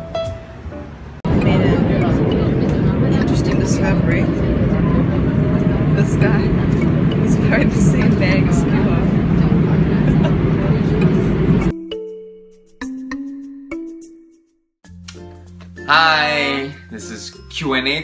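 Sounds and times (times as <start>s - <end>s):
subway train rumbling: 0.0s - 11.7s
passengers chattering: 1.3s - 11.7s.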